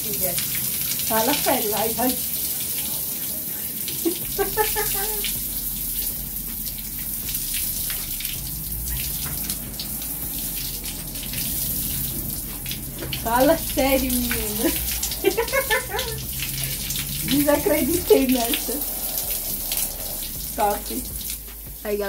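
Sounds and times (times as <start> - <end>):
shower water splashing: 0.0 - 22.0.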